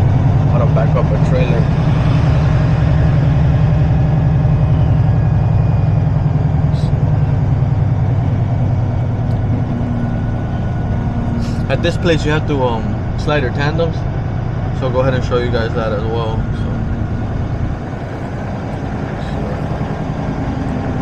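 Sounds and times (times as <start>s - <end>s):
diesel truck engine droning: 0.0s - 21.0s.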